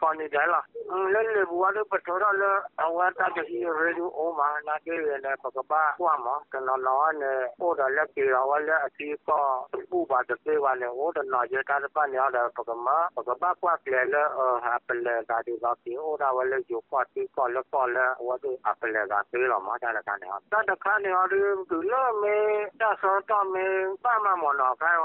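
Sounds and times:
person speaking: 0.0s - 25.0s.

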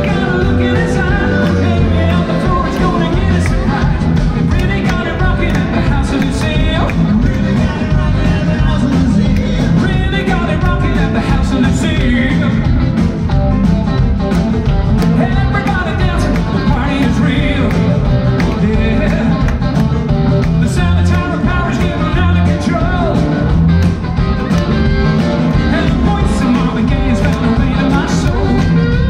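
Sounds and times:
bass guitar: 0.0s - 29.0s
drum beat: 0.0s - 29.0s
electric guitars: 0.0s - 29.0s
live rock band playing loudly: 0.0s - 29.0s.

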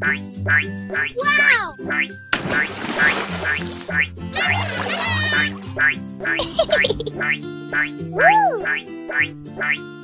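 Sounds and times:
children's background music: 0.0s - 10.0s
cartoon duck quacking: 3.9s - 6.0s.

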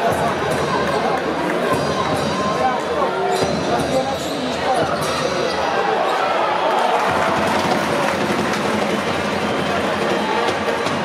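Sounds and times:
chatter of spectators: 0.0s - 11.0s.

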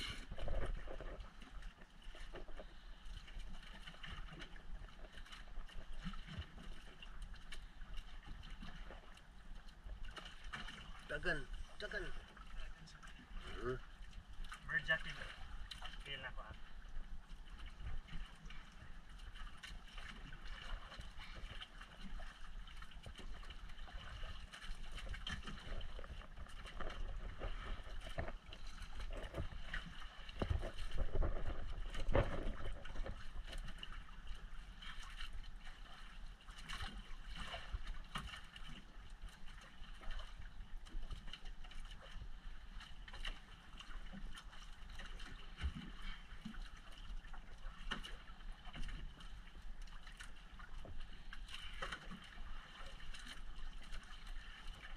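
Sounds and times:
water noise: 0.0s - 54.9s
wind: 0.0s - 54.9s.

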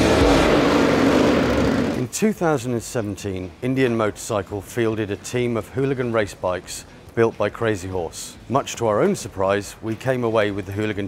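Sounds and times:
motorcycle engine revving hard: 0.0s - 2.1s.

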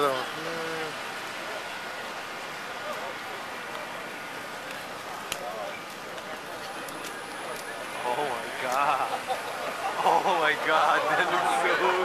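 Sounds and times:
crowd chatter: 0.0s - 12.0s
vehicle road noise: 0.0s - 12.0s.

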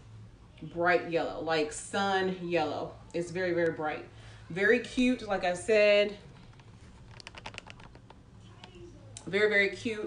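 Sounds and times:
hand clicking and tapping camera: 6.5s - 8.2s.

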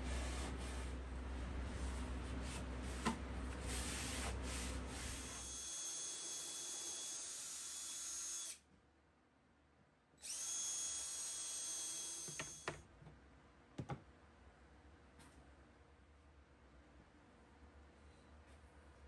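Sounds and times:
cordless drill driving screws: 10.2s - 12.7s.

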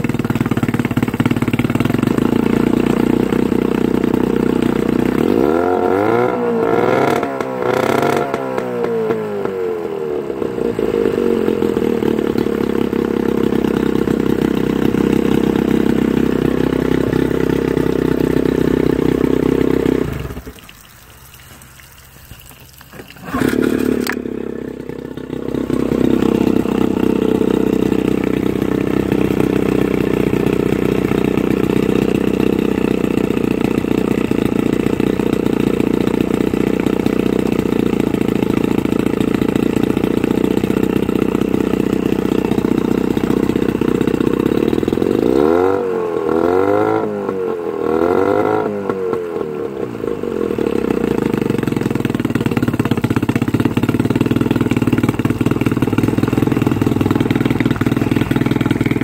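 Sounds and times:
outboard motor revving: 0.0s - 59.0s
outboard motor running: 0.0s - 59.0s.

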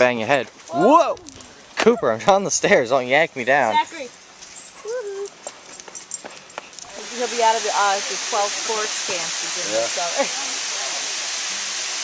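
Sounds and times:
dog whining: 4.5s - 5.4s.

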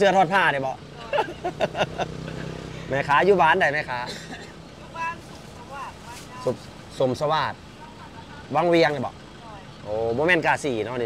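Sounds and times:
young woman laughing: 1.0s - 2.7s.

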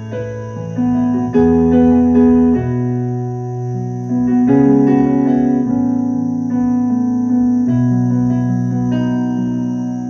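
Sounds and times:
synthesizer sustained chords: 0.0s - 10.0s.

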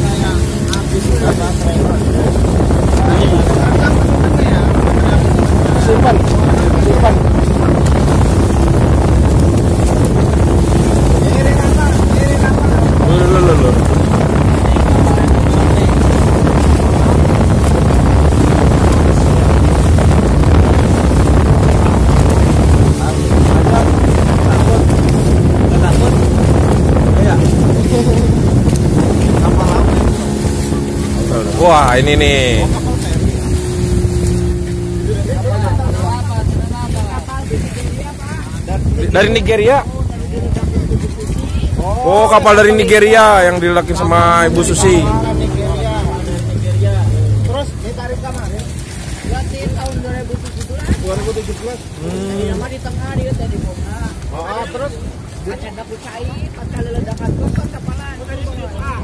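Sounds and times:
boat engine running: 0.0s - 59.0s
people talking: 0.0s - 59.0s
water rushing past hull: 0.0s - 59.0s
wind buffeting microphone: 0.0s - 59.0s.

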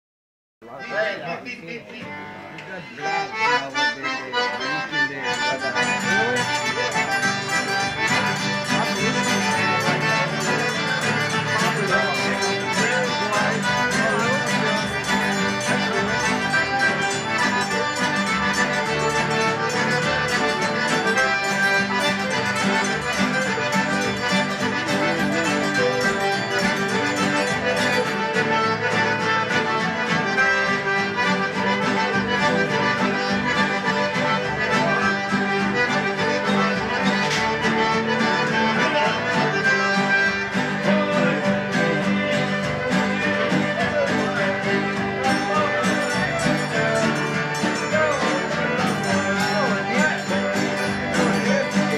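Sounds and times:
button accordion: 0.6s - 51.9s
fiddle: 0.6s - 51.9s
guitar: 0.6s - 51.9s.

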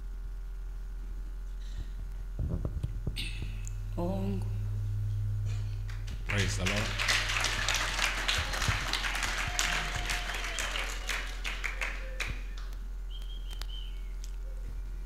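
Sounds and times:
congregation applauding: 5.9s - 12.7s.

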